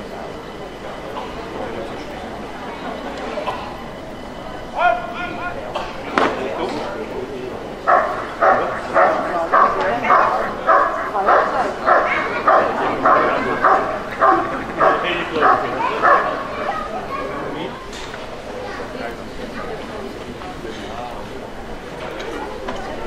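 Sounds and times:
dog barking: 7.9 - 16.5.

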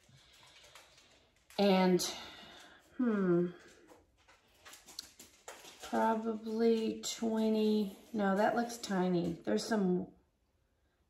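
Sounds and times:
dog clicks and taps: 3.7 - 7.3.

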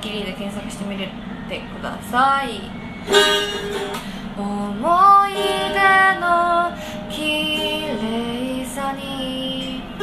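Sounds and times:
acoustic guitar: 3.0 - 10.0
woman singing slow song: 4.1 - 10.0.

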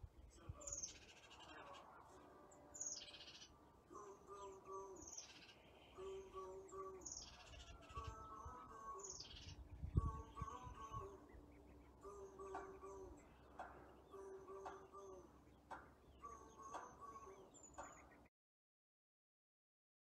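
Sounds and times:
birds calling: 0.0 - 18.3.

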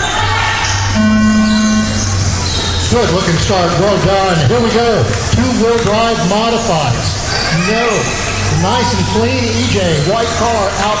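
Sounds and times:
race start horn: 1.0 - 2.4.

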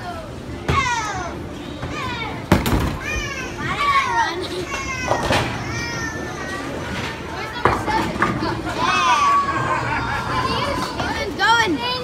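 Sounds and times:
children calling out and squealing: 3.0 - 12.0.

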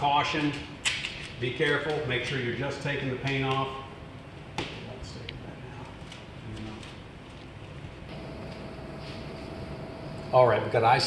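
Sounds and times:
faint steady hum: 2.2 - 11.0.

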